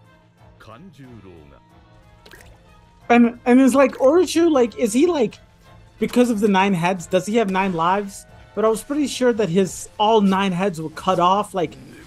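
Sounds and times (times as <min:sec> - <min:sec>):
background music: 0:00.0 - 0:12.0
person narrating: 0:03.1 - 0:05.4.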